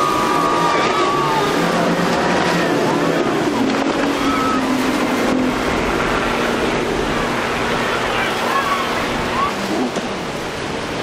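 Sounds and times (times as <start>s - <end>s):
outboard motors droning: 0.0s - 11.0s
rush of wake and spray: 0.0s - 11.0s.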